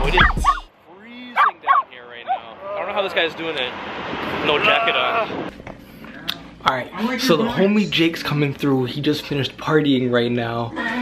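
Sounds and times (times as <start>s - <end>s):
puppy whining: 0.0s - 0.7s
puppy yipping: 0.1s - 0.7s, 1.4s - 2.5s.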